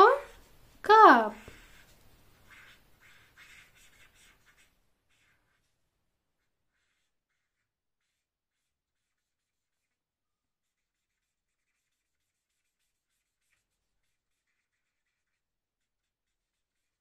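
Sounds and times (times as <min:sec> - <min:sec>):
marker scratching on paper: 0:00.0 - 0:00.6, 0:01.3 - 0:17.0.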